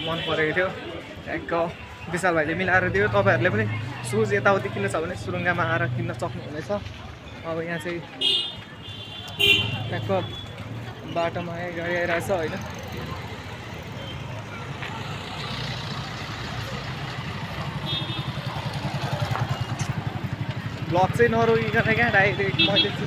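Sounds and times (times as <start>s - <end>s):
vehicle horn tooting: 8.2s - 10.5s, 17.8s - 18.4s.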